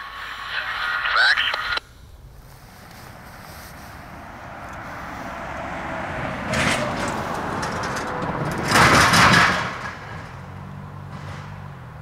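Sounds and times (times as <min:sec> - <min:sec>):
vehicle driving past: 0:02.1 - 0:12.0.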